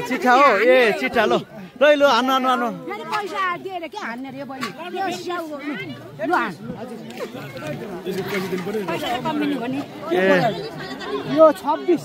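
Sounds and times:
crowd chatter: 0.0 - 12.0
people talking close by: 0.0 - 12.0.

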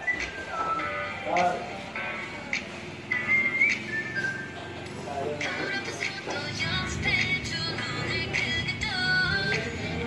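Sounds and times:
high whistled melody: 0.0 - 1.2, 3.1 - 4.7
music with sharp beat: 0.0 - 10.0.

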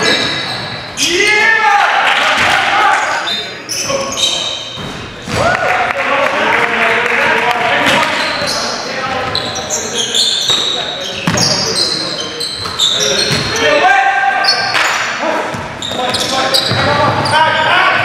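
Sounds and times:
players' voices: 0.0 - 18.0
short high squeaks: 8.2 - 13.7.

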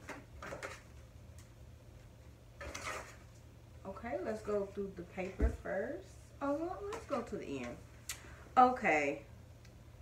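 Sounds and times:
paper rustling: 2.6 - 3.4.

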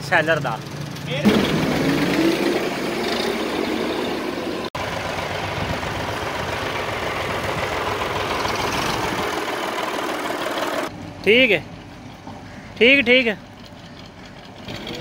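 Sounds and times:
tractor diesel engine running: 0.5 - 15.0.

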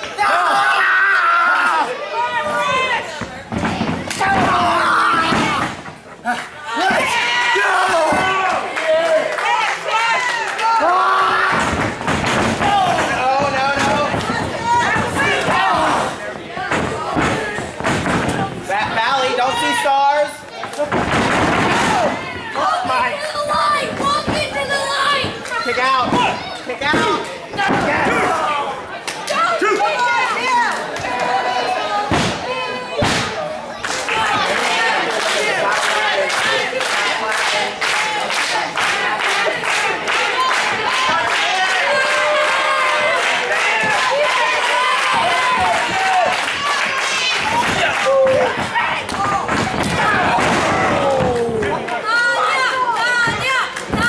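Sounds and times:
spectators shouting: 0.0 - 20.9, 38.1 - 54.0.

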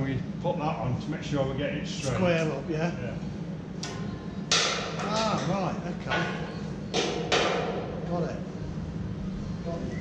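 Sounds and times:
loud metallic knock: 4.5 - 5.5, 6.1 - 7.9.

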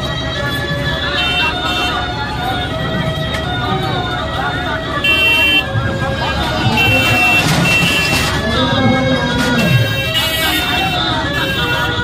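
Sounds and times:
crowd voices overlapping: 0.0 - 12.0.

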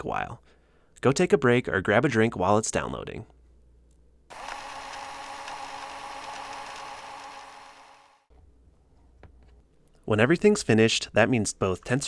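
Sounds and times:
mechanical whirring: 4.3 - 8.2.

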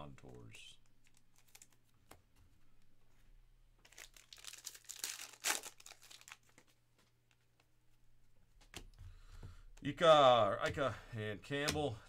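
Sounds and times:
wrapper tearing and crinkling: 1.0 - 1.8, 3.8 - 6.7.

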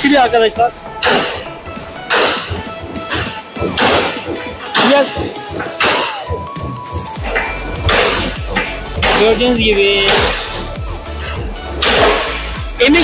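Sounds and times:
background music: 0.0 - 13.0
hammer striking chisel on metal: 1.0 - 1.5, 2.1 - 12.5.

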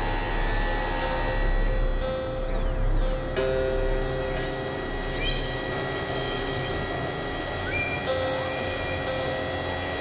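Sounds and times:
synthesizer drone music: 0.0 - 10.0.

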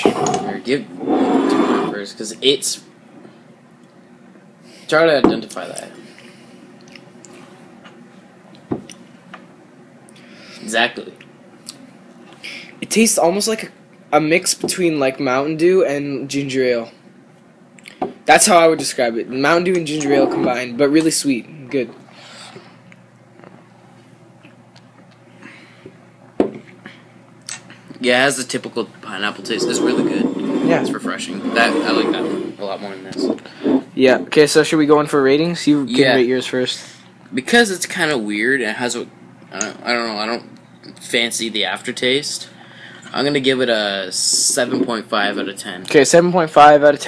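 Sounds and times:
low steady hum: 0.0 - 47.0.

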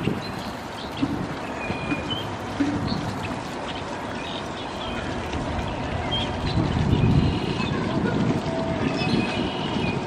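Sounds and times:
wind on microphone: 0.0 - 3.6, 4.8 - 10.0
distant traffic: 0.0 - 10.0.

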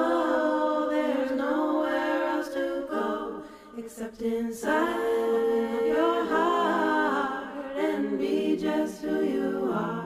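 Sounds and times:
voices singing gliding notes: 0.0 - 10.0.

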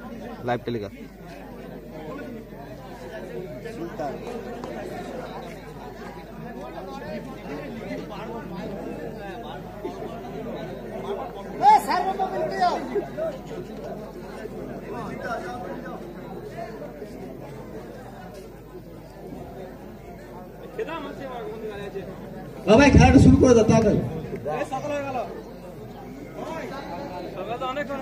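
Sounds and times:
crowd chattering: 0.0 - 28.0.

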